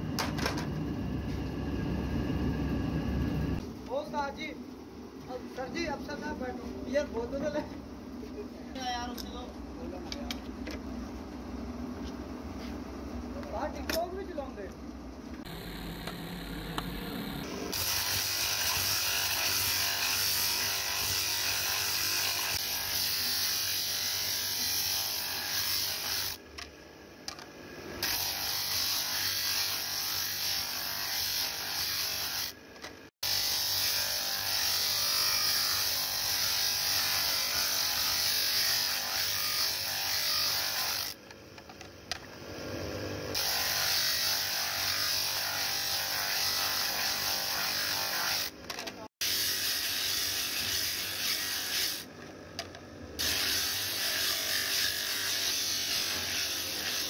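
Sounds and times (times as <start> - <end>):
electric motor hum: 0.0 - 3.7, 15.4 - 32.6.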